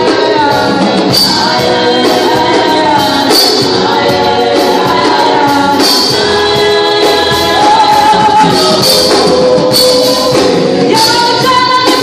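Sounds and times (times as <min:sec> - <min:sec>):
drum kit: 0:00.0 - 0:12.0
electric keyboard: 0:00.0 - 0:12.0
group of singers: 0:00.0 - 0:12.0.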